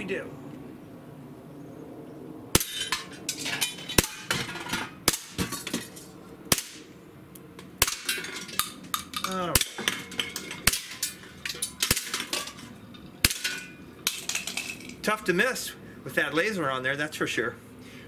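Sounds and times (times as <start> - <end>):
cans and bottles clattering: 2.6 - 6.0, 7.8 - 15.0
bb pistol shots cracking: 6.5 - 6.9.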